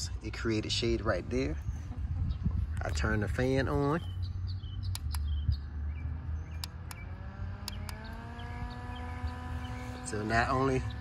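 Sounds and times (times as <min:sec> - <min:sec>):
sharp clicks: 0:04.8 - 0:05.4, 0:06.5 - 0:08.2
small fan motor humming: 0:06.1 - 0:11.0.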